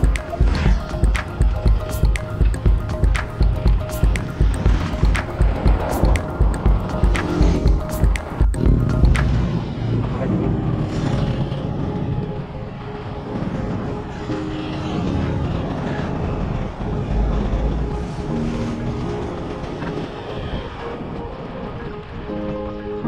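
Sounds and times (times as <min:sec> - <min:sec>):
highway traffic noise: 0:00.0 - 0:22.3
background music with held notes: 0:00.0 - 0:23.0
wind rumble on microphone: 0:00.0 - 0:23.0.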